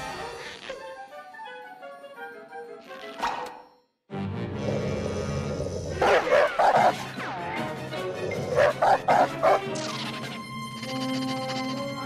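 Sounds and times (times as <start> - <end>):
background music: 0.0 - 12.0
cartoon dog barking: 6.0 - 7.0, 8.6 - 9.6.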